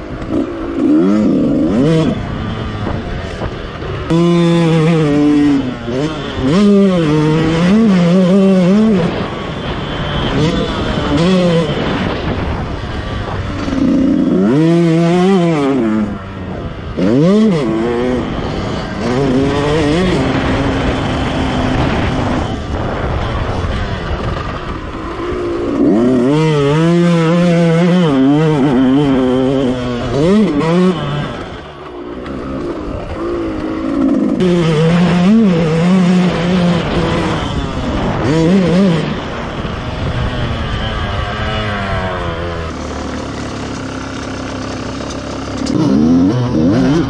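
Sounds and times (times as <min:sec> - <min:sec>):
motocross bike engine revving: 0:00.0 - 0:47.0.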